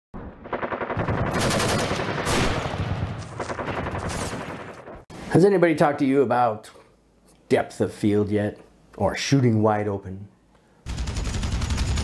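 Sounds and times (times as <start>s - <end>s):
automatic gunfire burst: 0.5s - 4.8s, 10.9s - 12.0s.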